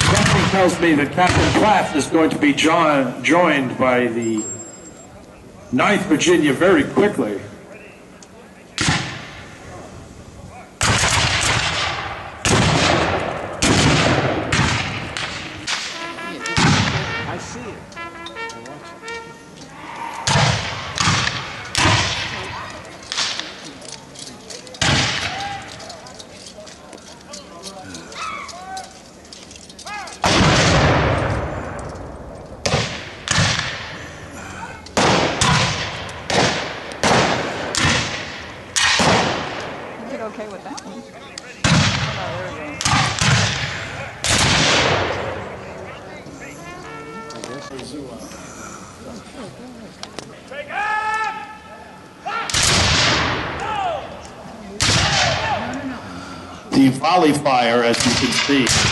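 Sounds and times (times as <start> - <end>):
musket shots with echo: 0.0 - 1.7, 8.8 - 9.4, 10.8 - 17.2, 20.3 - 22.5, 24.8 - 25.4, 30.2 - 32.0, 32.6 - 34.0, 35.0 - 39.9, 41.6 - 45.5, 52.5 - 53.6, 54.8 - 55.5, 57.9 - 58.9.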